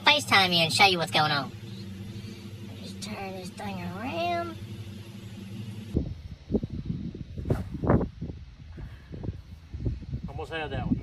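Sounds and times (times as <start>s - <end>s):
wind on microphone: 5.9s - 11.0s.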